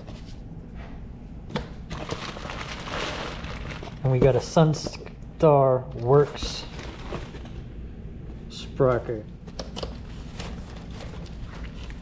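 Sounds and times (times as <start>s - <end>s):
plastic bag crinkling: 1.9s - 4.4s.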